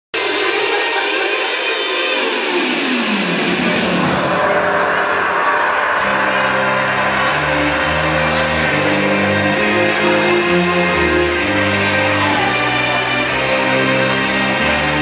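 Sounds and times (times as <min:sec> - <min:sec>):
held bass notes: 0:03.1 - 0:15.0.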